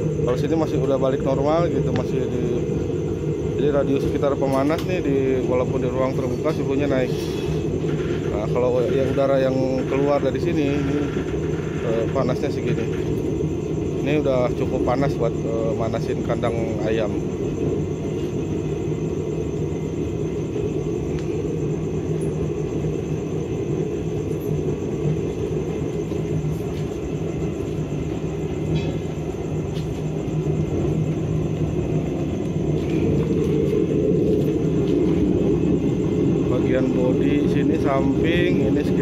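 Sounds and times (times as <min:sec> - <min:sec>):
oil burner heater rumbling: 0:00.0 - 0:39.0.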